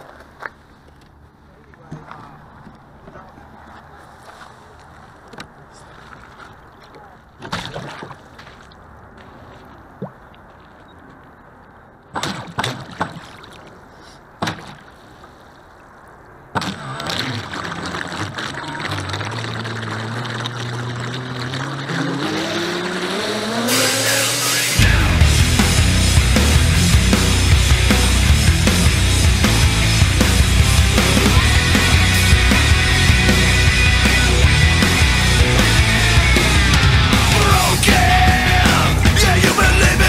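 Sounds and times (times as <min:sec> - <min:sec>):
water noise: 0:00.0 - 0:40.0.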